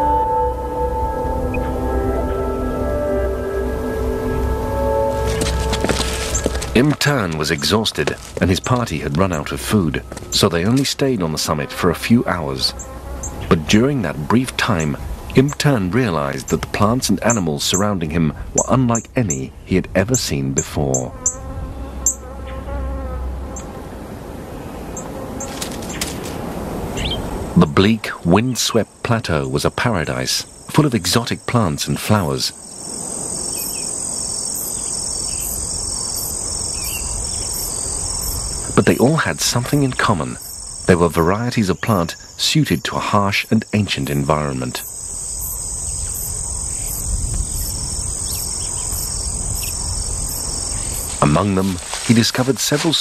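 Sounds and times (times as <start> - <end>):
insect buzzing: 0.0 - 15.4, 20.9 - 27.3, 32.5 - 41.2, 43.6 - 52.9
outdoor hiss: 3.5 - 53.0.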